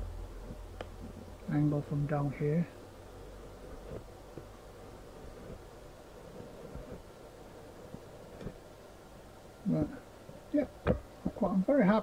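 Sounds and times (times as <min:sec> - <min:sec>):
low hum: 0:00.0 - 0:11.3.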